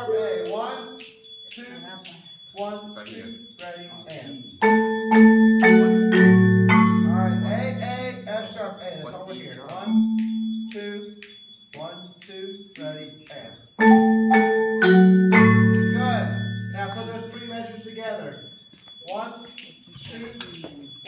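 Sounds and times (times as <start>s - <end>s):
marimba chords ringing: 0.0s - 1.0s, 4.6s - 8.8s, 9.9s - 10.8s, 13.8s - 17.5s
soft marimba single notes: 0.0s - 1.2s, 4.6s - 8.6s, 9.8s - 10.9s, 13.8s - 17.4s.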